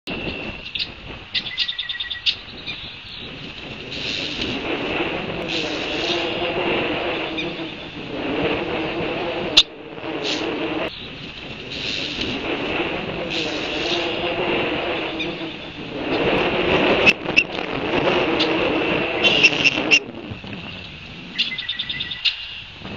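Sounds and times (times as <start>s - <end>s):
bird chirps: 0.1s - 3.5s, 19.2s - 22.7s.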